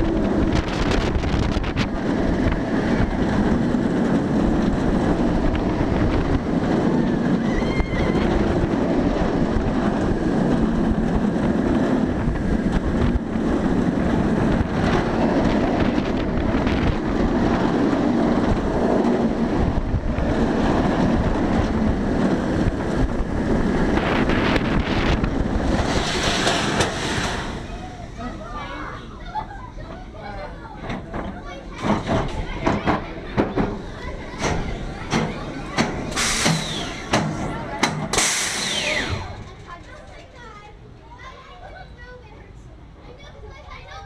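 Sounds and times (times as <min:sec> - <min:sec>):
wind rushing over microphone: 0:00.0 - 0:28.3
roller coaster roaring on track: 0:00.0 - 0:44.0
brake hiss: 0:36.1 - 0:37.5, 0:38.1 - 0:39.4.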